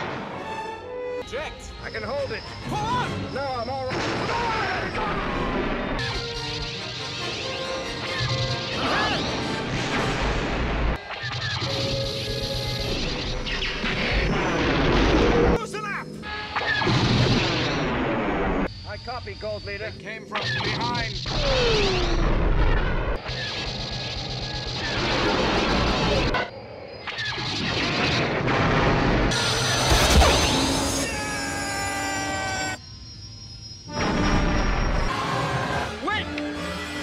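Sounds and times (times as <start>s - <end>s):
orchestral score: 0.0s - 3.9s
spaceship explosions: 3.7s - 15.6s, 16.4s - 19.4s, 20.3s - 32.8s
blaster fire: 3.8s - 15.6s, 16.5s - 18.7s, 20.4s - 32.8s.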